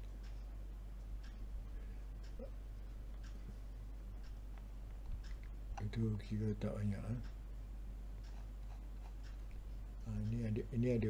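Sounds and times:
faint ticks: 0.0 - 7.4, 8.2 - 11.0
low steady hum: 0.0 - 11.0.

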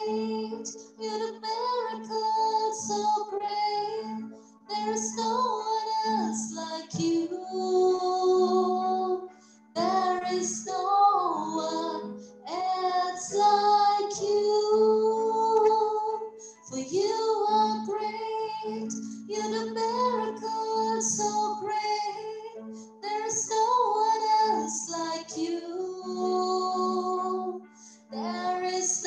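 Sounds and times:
woman singing into a microphone: 0.0 - 29.0.

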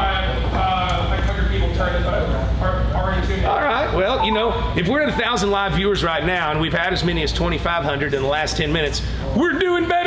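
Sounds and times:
steady low hum: 0.0 - 9.6
people talking: 0.0 - 10.0.

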